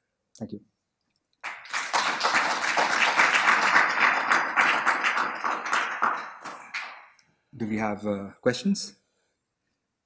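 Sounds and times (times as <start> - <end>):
audience applause: 1.4 - 7.1.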